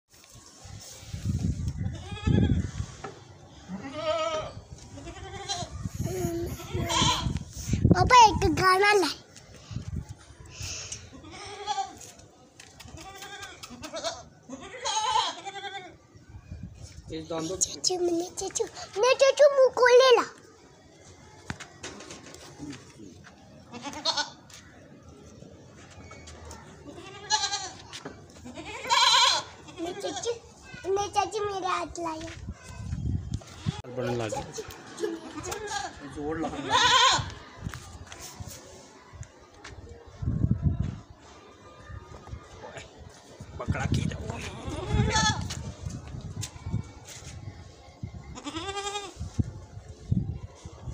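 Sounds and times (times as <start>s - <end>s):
goats bleating: 3.7s - 5.7s, 6.5s - 7.4s, 23.7s - 24.4s, 26.9s - 27.8s, 28.4s - 30.4s, 36.6s - 37.4s, 48.4s - 49.2s.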